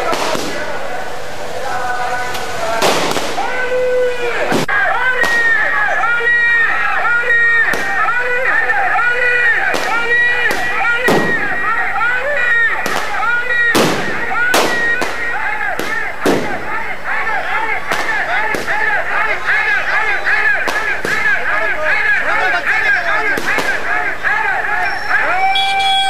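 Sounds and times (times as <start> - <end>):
crowd voices: 0.0 - 26.0
firecrackers banging: 0.0 - 26.0.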